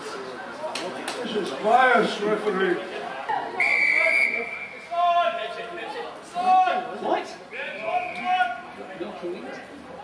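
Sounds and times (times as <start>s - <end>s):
referee's whistle blast: 3.6s - 4.9s.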